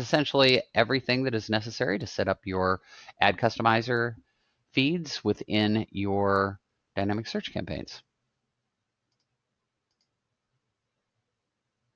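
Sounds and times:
faint computer mouse clicks: 0:09.1 - 0:09.3, 0:09.9 - 0:10.2.

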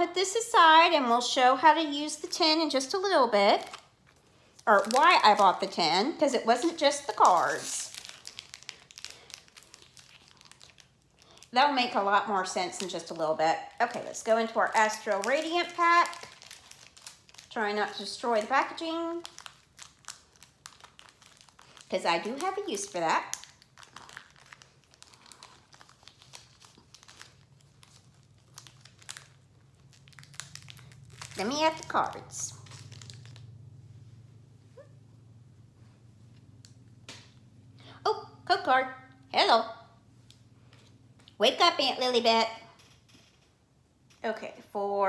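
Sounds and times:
foil card pack crinkling: 0:02.2 - 0:05.9, 0:06.5 - 0:33.6.

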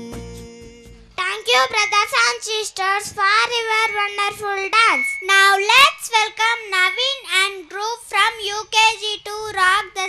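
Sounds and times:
boy chanting through loudspeakers: 0:01.2 - 0:10.0.

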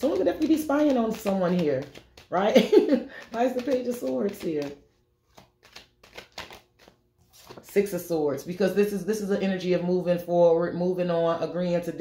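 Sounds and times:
cards flicking and sliding: 0:00.0 - 0:02.3, 0:03.1 - 0:07.8.

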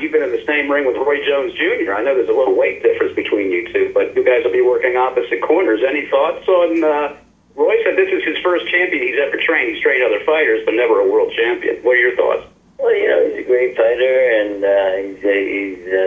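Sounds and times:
person talking over telephone line: 0:00.0 - 0:16.0.

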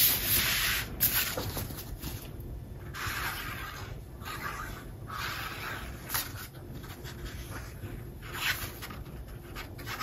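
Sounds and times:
glue bottle tip scratching paper: 0:02.9 - 0:10.0.

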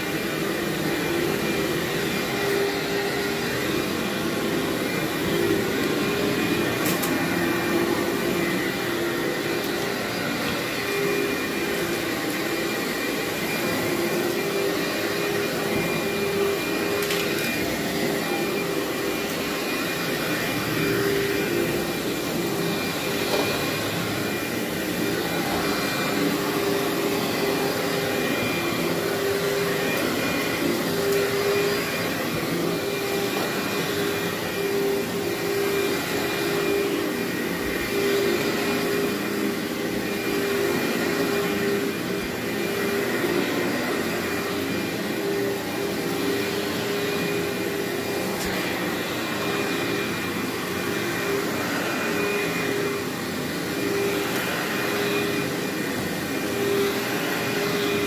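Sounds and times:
upright vacuum cleaner running: 0:00.0 - 0:58.0.

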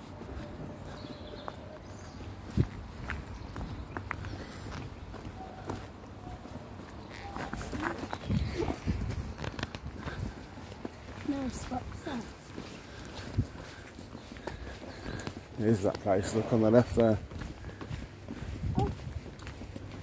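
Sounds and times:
footsteps on tarmac: 0:00.0 - 0:20.0.

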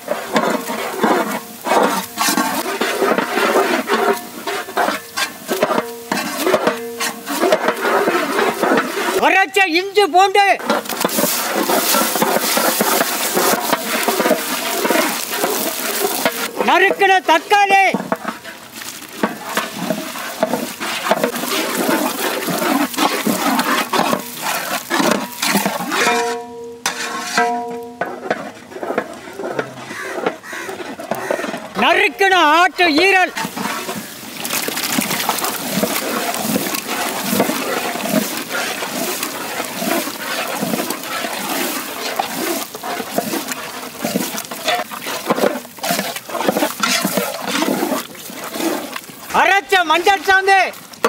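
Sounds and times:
meat frying and bubbling in sauce: 0:00.0 - 0:51.0
paddle scraping in metal pot: 0:00.0 - 0:51.0.

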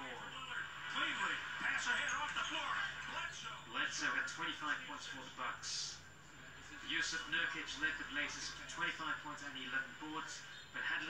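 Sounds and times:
television speech: 0:00.0 - 0:11.0.

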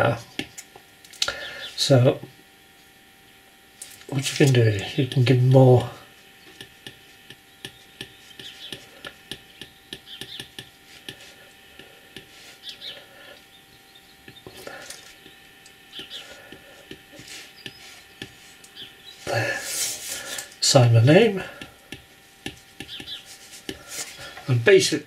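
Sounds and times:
stylus tapping on glass screen: 0:07.6 - 0:11.2.

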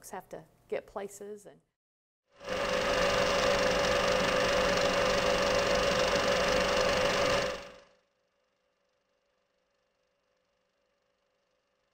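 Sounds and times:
film projector whirring: 0:02.4 - 0:07.9.

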